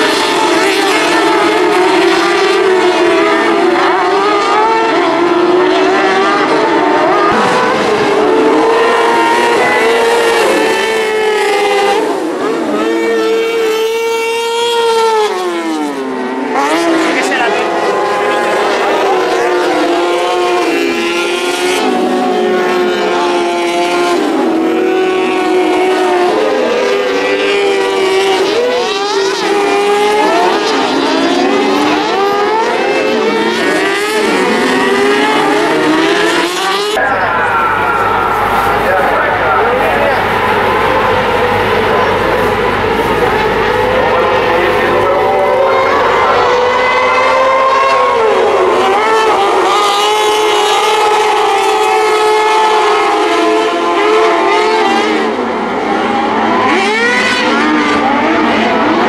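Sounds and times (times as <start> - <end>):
racing buggy engines revving: 0.0 - 59.0.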